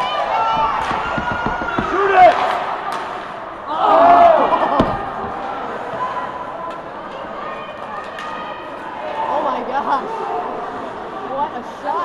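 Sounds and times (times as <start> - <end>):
hum of spectators' voices: 0.0 - 12.0
sharp clicks from hockey play: 7.8 - 8.4.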